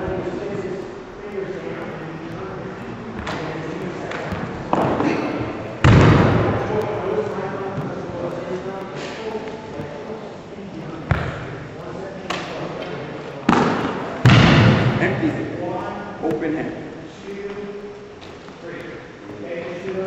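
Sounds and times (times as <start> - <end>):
people talking: 0.0 - 20.0.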